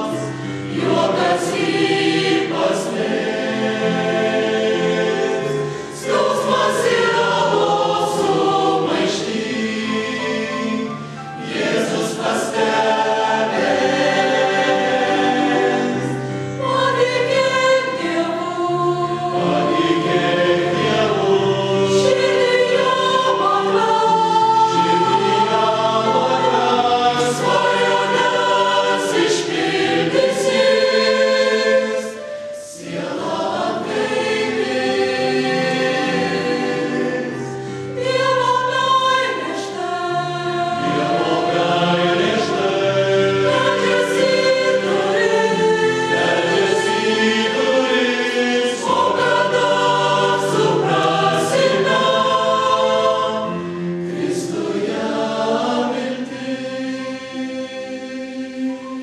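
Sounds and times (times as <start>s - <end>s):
mixed choir singing a hymn: 0.0s - 59.0s.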